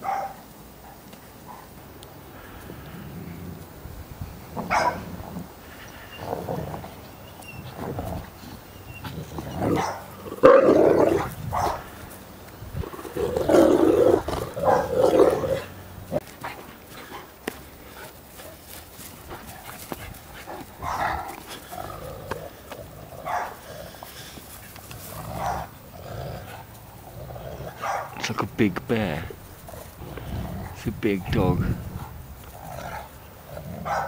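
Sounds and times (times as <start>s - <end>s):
dogs growling while play-fighting: 2.3s - 28.2s, 29.3s - 30.8s, 31.6s - 34.0s.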